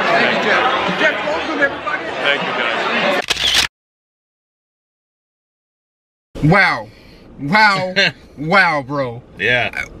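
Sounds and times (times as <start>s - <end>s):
men talking: 0.0s - 3.2s, 6.4s - 10.0s.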